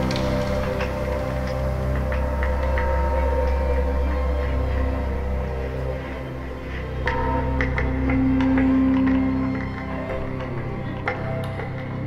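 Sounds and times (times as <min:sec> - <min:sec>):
deep sustained drone: 0:00.0 - 0:12.0.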